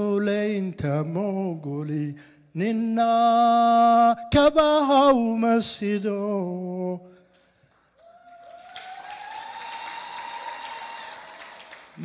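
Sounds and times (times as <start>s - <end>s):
audience applause: 8.0s - 12.0s.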